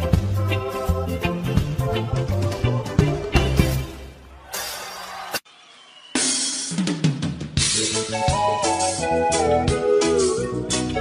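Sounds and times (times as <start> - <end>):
reggae drum kit and bass: 0.0 - 4.7, 6.2 - 11.0.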